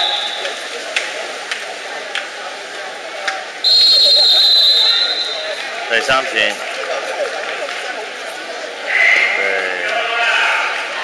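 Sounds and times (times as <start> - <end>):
crowd voices: 0.0 - 11.0
whistle long blast: 3.6 - 5.6.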